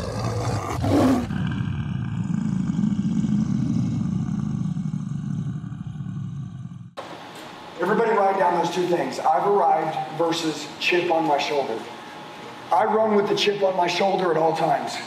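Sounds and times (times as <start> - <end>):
lion roar: 0.0 - 7.0.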